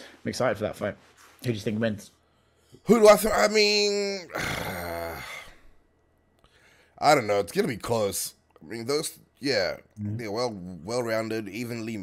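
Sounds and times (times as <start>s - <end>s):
man sighing: 4.3s - 5.8s.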